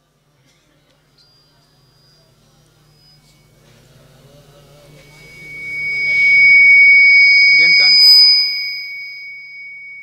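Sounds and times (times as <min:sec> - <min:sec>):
microphone feedback ring: 0:01.2 - 0:03.6, 0:04.8 - 0:10.0.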